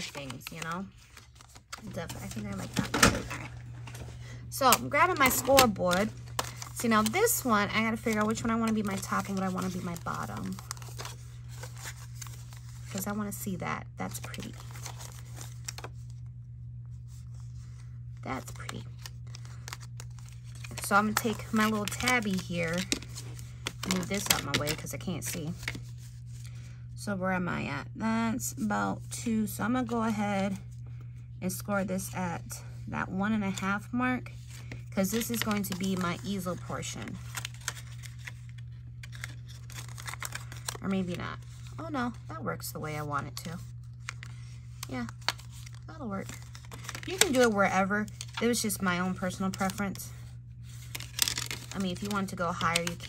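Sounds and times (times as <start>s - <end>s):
paper envelopes rustling: 0.0s - 16.3s, 16.9s - 26.5s, 34.3s - 42.3s, 43.0s - 53.0s
steady low hum: 0.0s - 53.0s.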